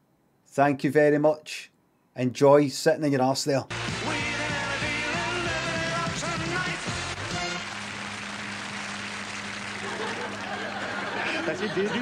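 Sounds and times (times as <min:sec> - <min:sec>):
tv theme music: 0:03.7 - 0:10.8.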